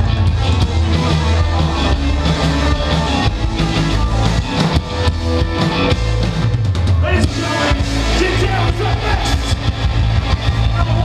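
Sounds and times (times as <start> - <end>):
drum kit: 0.0 - 11.0
surf rock band playing: 0.0 - 11.0.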